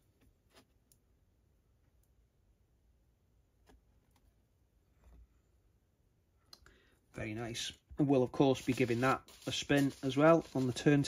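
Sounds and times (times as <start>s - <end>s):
man's voice: 7.2s - 11.0s.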